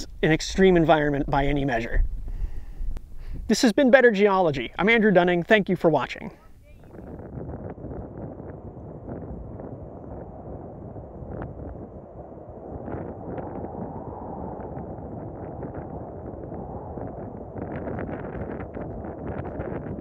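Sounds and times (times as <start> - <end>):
wind buffeting microphone: 0.0 - 3.6, 4.4 - 20.0.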